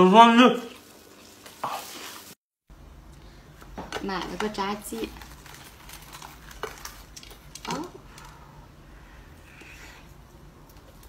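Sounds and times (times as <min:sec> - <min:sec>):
crisp crust crackling: 0:04.2 - 0:08.4.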